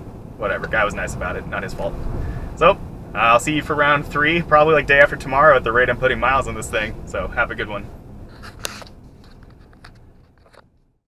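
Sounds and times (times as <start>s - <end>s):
pickup cabin rumble: 0.0s - 10.8s
clicks and scrapes of handling: 8.3s - 10.7s.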